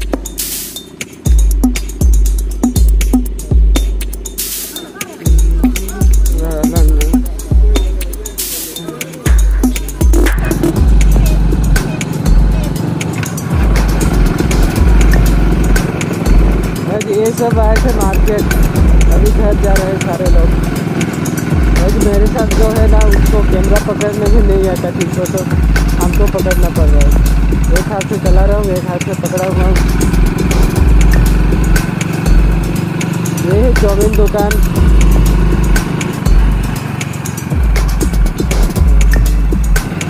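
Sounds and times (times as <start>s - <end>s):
motorcycle engine running: 0.0s - 40.0s.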